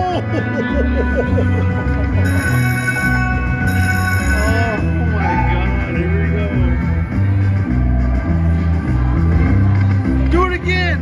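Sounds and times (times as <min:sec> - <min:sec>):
slot machine music: 0:00.4 - 0:06.8
bell-like chimes: 0:02.2 - 0:06.1.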